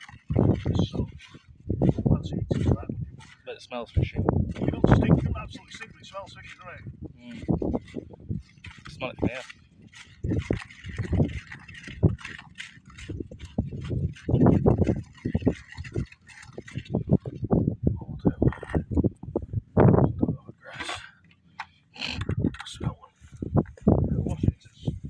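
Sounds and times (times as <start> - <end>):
stirrer scraping plastic bucket: 0.0 - 17.6.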